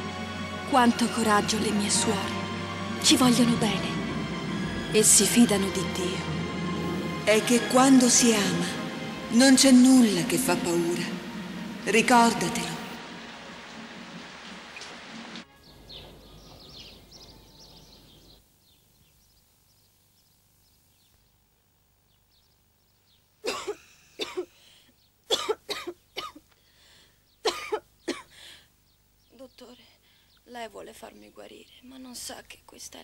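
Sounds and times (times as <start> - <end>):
girl coughing: 23.4 - 24.6, 25.3 - 26.4, 27.5 - 28.5.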